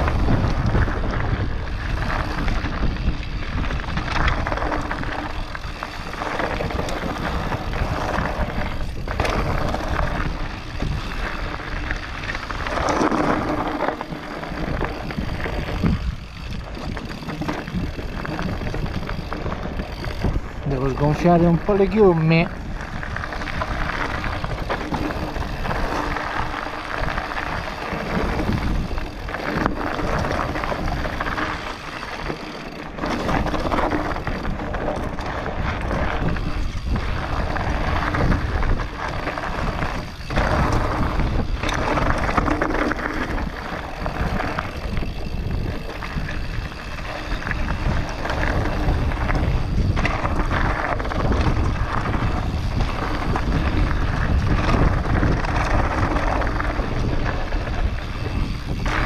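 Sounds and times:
bike rattling over bumps: 0:00.0 - 0:59.0
tyres rolling over dirt: 0:00.0 - 0:59.0
wind buffeting microphone: 0:00.0 - 0:59.0.

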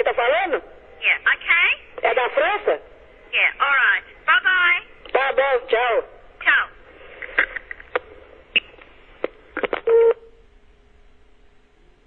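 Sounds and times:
short loud phone beep: 0:09.9 - 0:10.3
faint steady phone line tone: 0:09.9 - 0:10.4.

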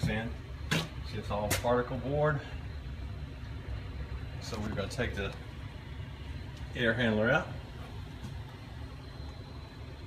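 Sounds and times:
air conditioning hum: 0:00.0 - 0:10.0.

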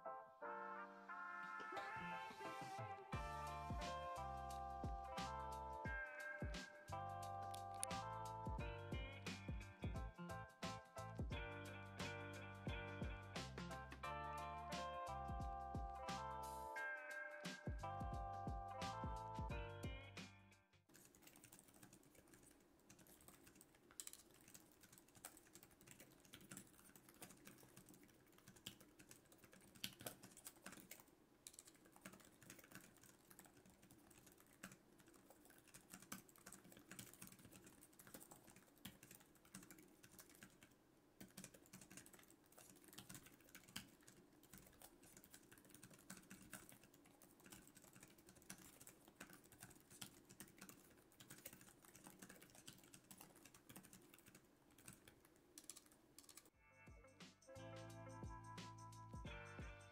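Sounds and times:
laptop keyboard typing: 0:03.2 - 0:08.6, 0:20.9 - 0:56.6.

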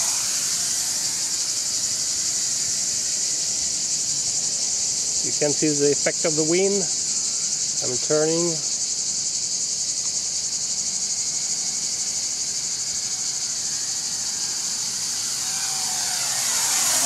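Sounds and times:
quadcopter propellers whining: 0:00.0 - 0:08.8, 0:10.8 - 0:17.0
insects buzzing shrilly: 0:00.0 - 0:17.0.

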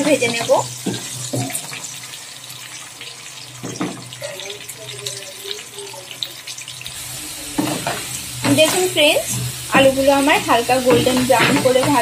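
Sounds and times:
potatoes sizzling in oil: 0:00.0 - 0:12.0
wooden spatula stirring: 0:07.6 - 0:12.0.

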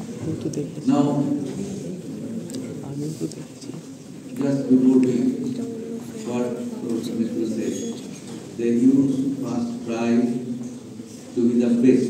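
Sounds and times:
man speaking into a microphone: 0:00.6 - 0:01.8, 0:04.2 - 0:12.0.

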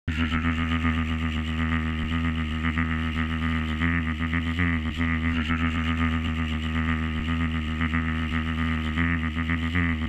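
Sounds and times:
pulsing low drone: 0:00.0 - 0:10.0.

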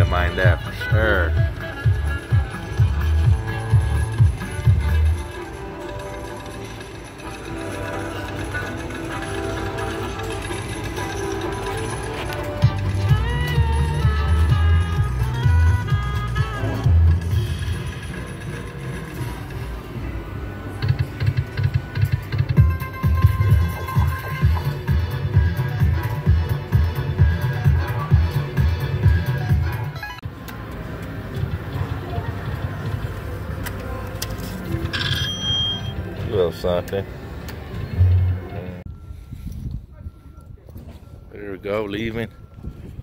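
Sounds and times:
bass beat: 0:00.0 - 0:05.4, 0:12.5 - 0:17.4, 0:21.2 - 0:30.0
slot machine electronic music: 0:00.0 - 0:30.3, 0:31.6 - 0:38.8
stepping chime tones: 0:34.9 - 0:36.1.

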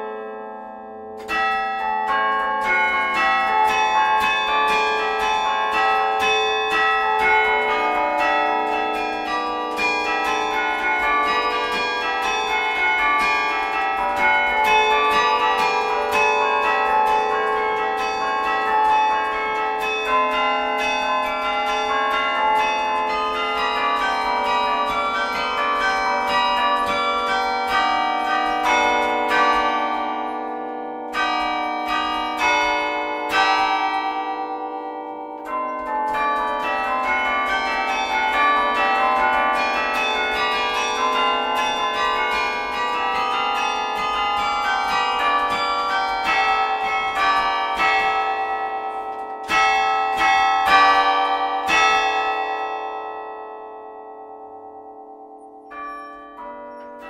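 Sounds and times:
carillon bells ringing: 0:00.0 - 0:57.0.

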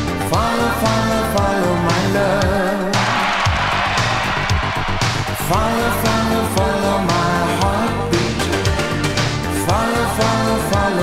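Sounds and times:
instrumental pop band from vinyl: 0:00.0 - 0:11.0.

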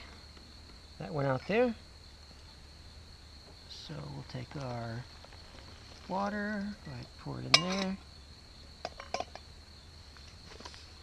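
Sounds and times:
metal pot clinking: 0:07.5 - 0:08.0, 0:08.8 - 0:09.4.

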